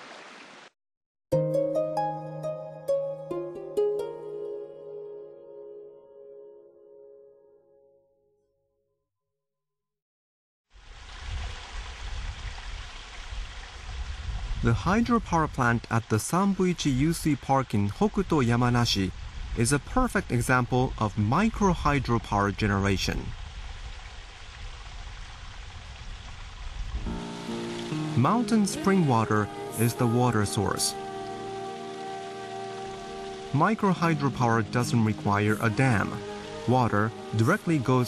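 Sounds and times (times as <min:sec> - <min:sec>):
water rushing in channel: 0:00.0 - 0:00.7, 0:10.8 - 0:38.0
background music with sustained tones: 0:01.3 - 0:08.4, 0:27.0 - 0:38.0.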